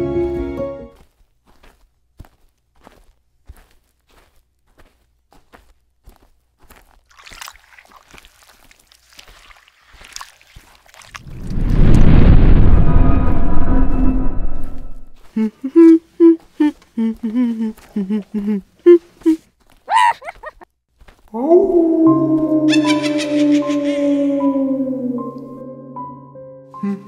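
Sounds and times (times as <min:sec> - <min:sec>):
loud low rumbling: 0:11.2 - 0:15.2.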